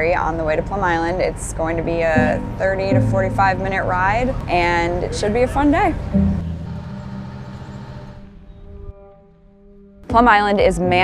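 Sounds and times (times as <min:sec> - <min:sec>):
ferry engine rumble: 0:00.0 - 0:08.5
background music: 0:01.9 - 0:11.0.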